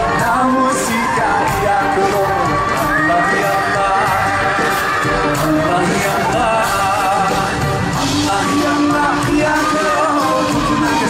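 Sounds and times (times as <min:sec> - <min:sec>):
live band playing: 0:00.0 - 0:11.0
person singing: 0:00.0 - 0:11.0.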